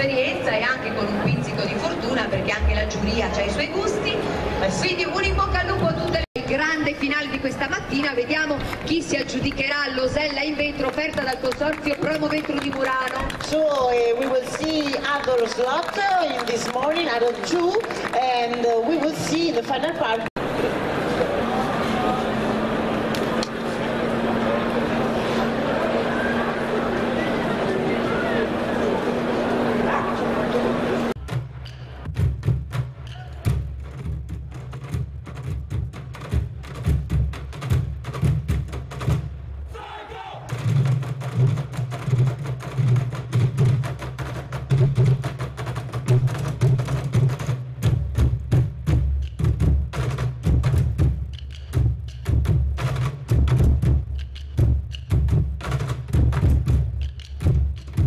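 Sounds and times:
crowd chatter: 0.0s - 32.1s
drumming on plastic water jugs: 31.2s - 39.4s, 40.5s - 58.0s.

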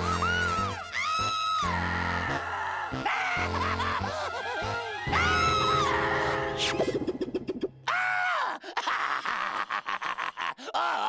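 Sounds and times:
cartoon dog crying out: 5.0s - 6.6s.

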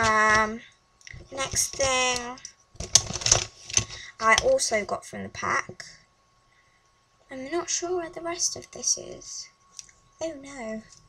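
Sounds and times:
pens rattling in pencil case: 2.8s - 4.0s.

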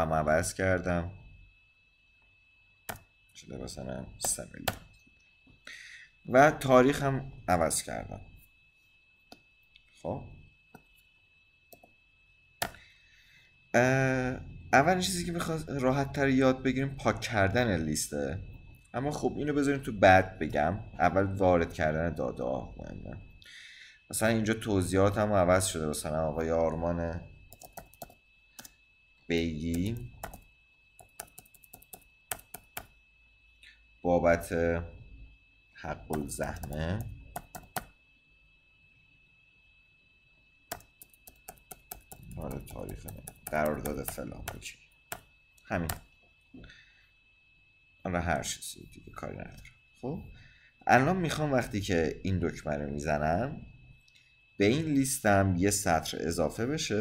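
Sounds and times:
computer keyboard keystrokes: 27.5s - 28.7s, 29.7s - 30.4s, 31.0s - 32.9s, 36.1s - 37.9s, 40.7s - 46.0s.

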